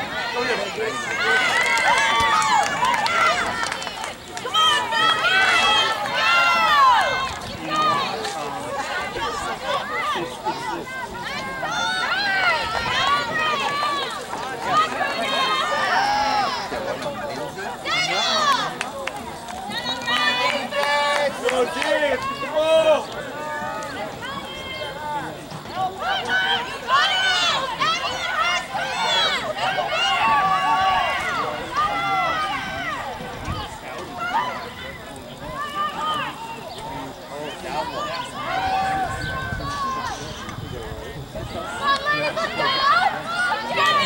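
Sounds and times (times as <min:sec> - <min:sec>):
girls shouting and calling: 0:00.0 - 0:18.8, 0:19.7 - 0:40.4, 0:41.4 - 0:44.0.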